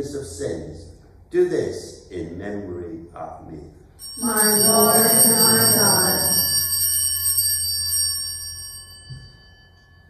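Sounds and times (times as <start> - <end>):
altar bells ringing: 4.0 - 10.0.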